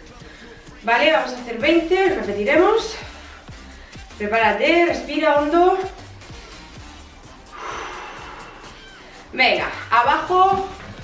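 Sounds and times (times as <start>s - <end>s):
background music with steady beat: 0.0s - 11.0s
woman taking deep breath: 7.5s - 9.3s.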